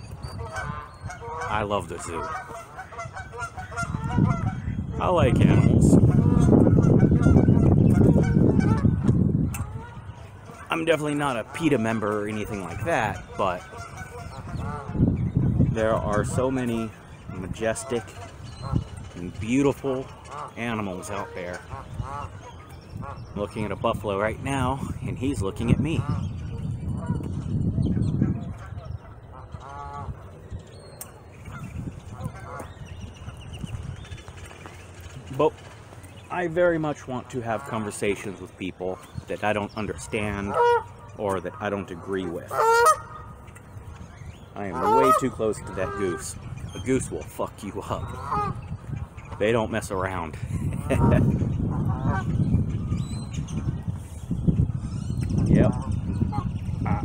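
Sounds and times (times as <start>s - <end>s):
geese honking: 0.0s - 57.0s
wind rumble on microphone: 0.0s - 57.0s.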